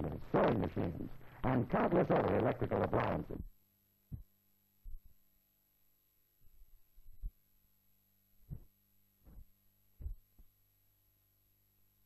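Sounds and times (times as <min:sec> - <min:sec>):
steady low hum: 0:00.0 - 0:12.0
faint low thumps: 0:08.4 - 0:10.5.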